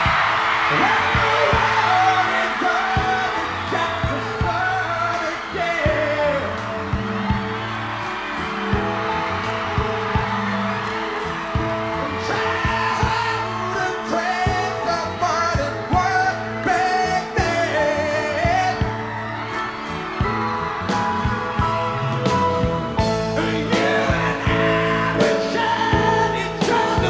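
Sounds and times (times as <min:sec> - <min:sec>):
bass: 0:00.0 - 0:27.0
keyboard chords: 0:00.0 - 0:27.0
steady drum beat: 0:00.0 - 0:27.0.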